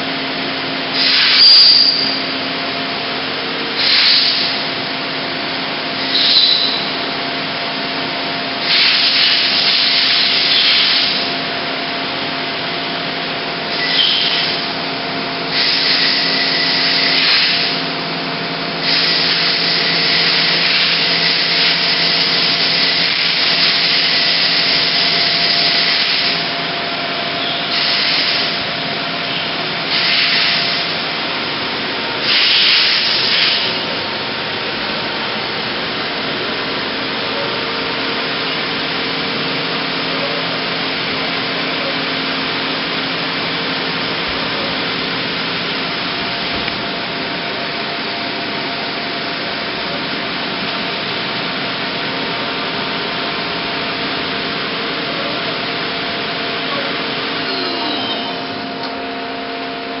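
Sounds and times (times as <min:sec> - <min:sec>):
hissing bursts: 0:08.6 - 0:11.2, 0:32.2 - 0:33.8
lathe humming: 0:52.6 - 1:00.0.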